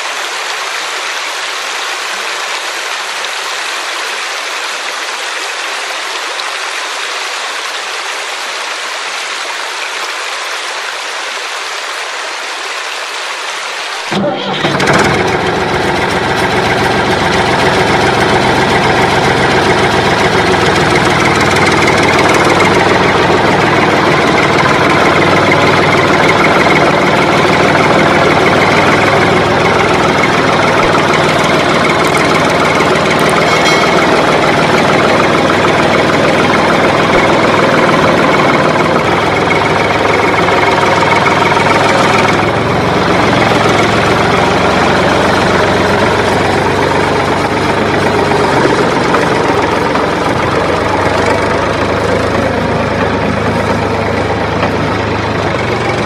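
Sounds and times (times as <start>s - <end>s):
tractor engine starting and idling: 14.1s - 56.0s.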